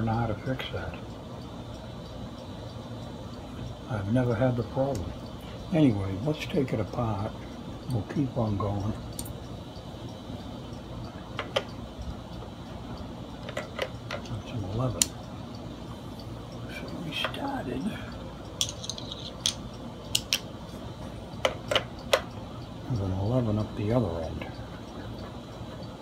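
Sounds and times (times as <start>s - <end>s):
metal tools clicking and clinking: 18.6s - 19.6s.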